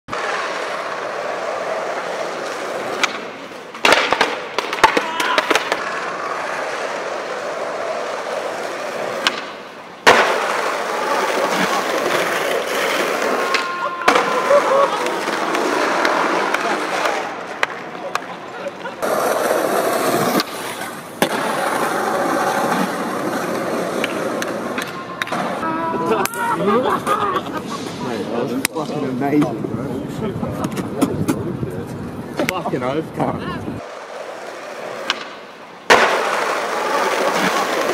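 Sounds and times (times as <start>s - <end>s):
skateboard clacks: 0.1s - 27.2s, 33.8s - 37.9s
skateboard wheels rolling on stone: 0.1s - 37.9s
men laughing and talking: 11.2s - 17.1s, 17.8s - 19.5s, 25.6s - 33.1s.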